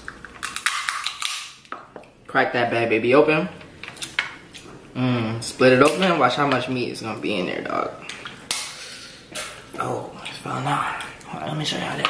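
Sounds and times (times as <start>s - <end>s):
crab shell cracking: 0.0s - 1.8s.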